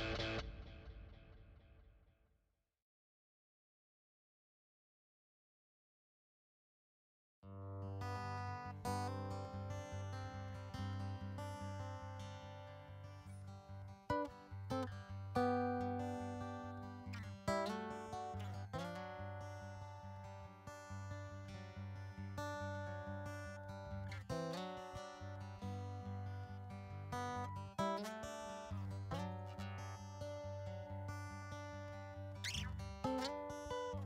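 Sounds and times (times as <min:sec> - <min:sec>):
acoustic guitar playing: 0:07.5 - 0:34.0.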